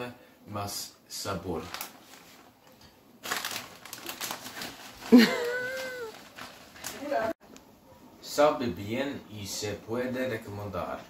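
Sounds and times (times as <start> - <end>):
rustling and shuffling: 1.6 - 7.6.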